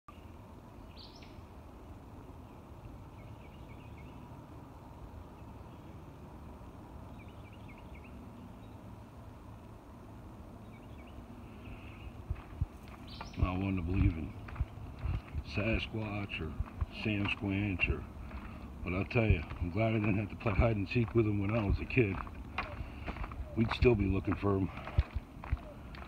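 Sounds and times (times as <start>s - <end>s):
bird chirping: 0.1s - 1.5s, 2.2s - 9.0s, 10.6s - 26.0s
low background rumble: 0.1s - 26.0s.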